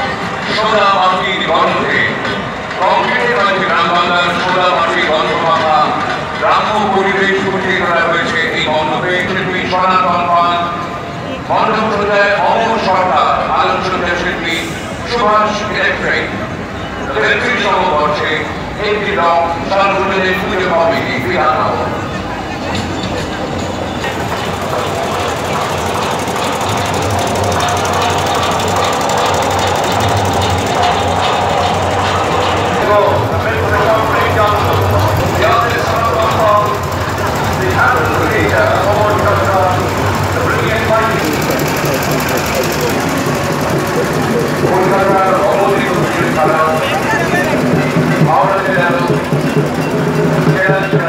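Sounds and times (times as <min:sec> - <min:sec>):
diesel truck engine rumbling: 0:00.0 - 0:51.0
people talking: 0:00.0 - 0:51.0.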